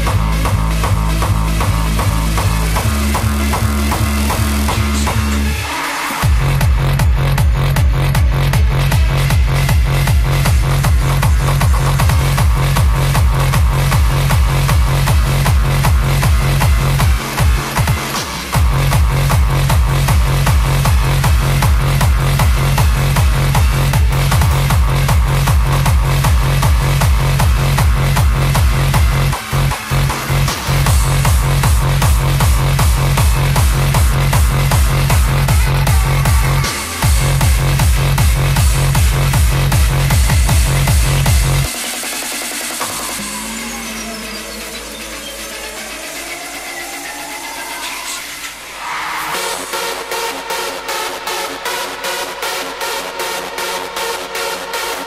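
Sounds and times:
heavy kick drum: 0.0s - 5.5s, 6.2s - 42.0s
hardstyle dance music: 0.0s - 55.0s.

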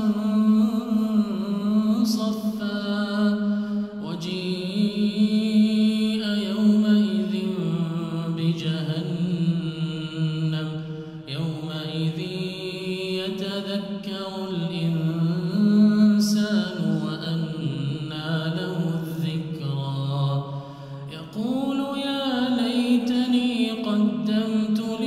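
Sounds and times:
man chanting recitation: 0.0s - 25.0s.

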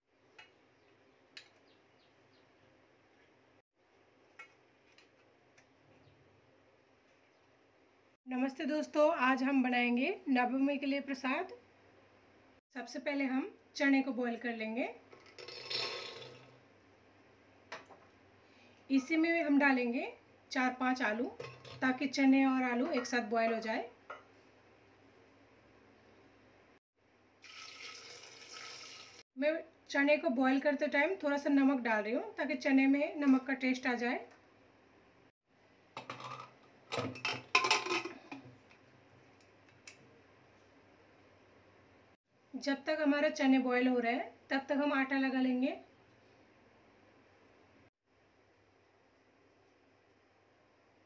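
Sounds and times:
lid clinks and knocks: 36.0s - 38.4s.

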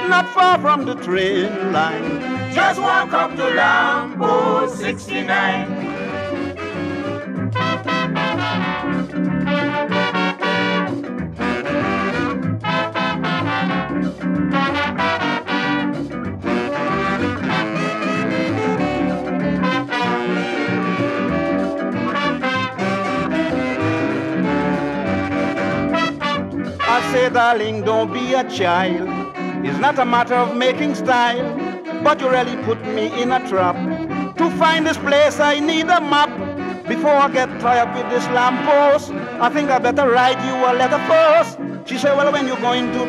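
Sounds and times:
brass horn section melody: 0.0s - 43.0s
bass and rhythm section: 1.8s - 30.4s.

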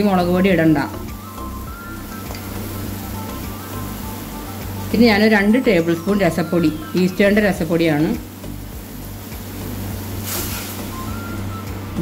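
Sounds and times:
steady low hum: 0.0s - 12.0s
splashy scrape: 10.2s - 10.8s.

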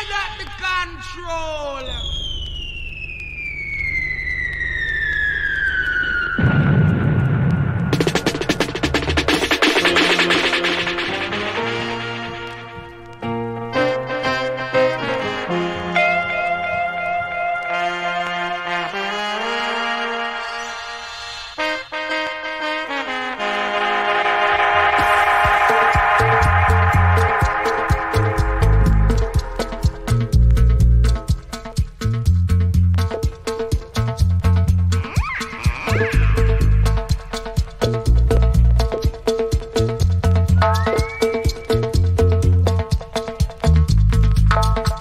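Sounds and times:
falling whistle tone: 1.8s - 6.7s, 40.6s - 42.1s
loud rumbling blast: 1.9s - 10.0s
drums: 6.3s - 12.9s, 24.5s - 45.0s
drum hits: 6.4s - 11.7s, 24.9s - 32.4s
horn section playing held notes: 10.2s - 30.2s
low hum: 25.0s - 31.3s
deep bass: 25.0s - 35.1s, 35.9s - 39.0s, 39.8s - 42.9s, 43.6s - 45.0s.

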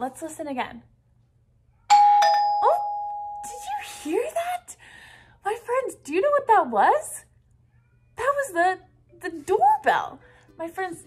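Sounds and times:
two-tone doorbell chime: 1.9s - 3.7s.

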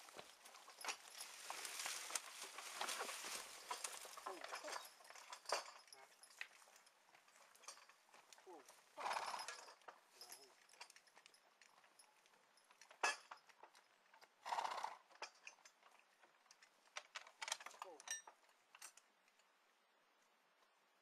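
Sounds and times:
harness chains clinking: 0.0s - 19.5s
horse breathy snorts: 9.0s - 9.4s, 14.5s - 15.0s.

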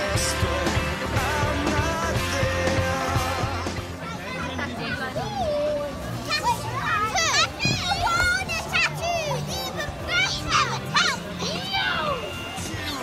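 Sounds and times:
background music: 0.0s - 13.0s
children shouting and squealing: 3.5s - 13.0s.

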